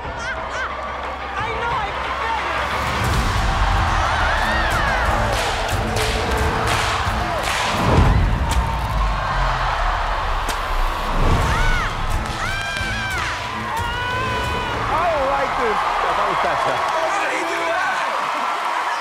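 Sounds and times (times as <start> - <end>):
crowd cheering and shrieking: 0.0 - 19.0
background music with beat: 2.9 - 15.2.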